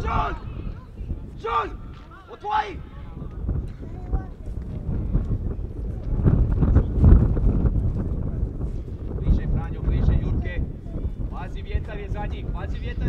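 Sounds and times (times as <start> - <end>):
person shouting: 0.0 - 0.6, 1.4 - 2.8
wind gusting across microphone: 0.0 - 13.0.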